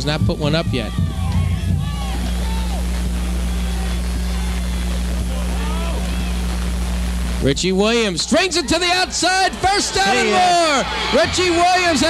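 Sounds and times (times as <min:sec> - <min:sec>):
electrical hum: 0:00.0 - 0:12.0.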